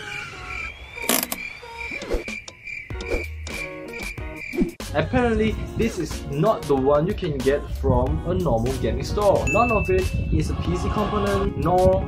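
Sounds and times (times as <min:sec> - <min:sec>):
high pulsing beep: 0:09.5 - 0:10.2.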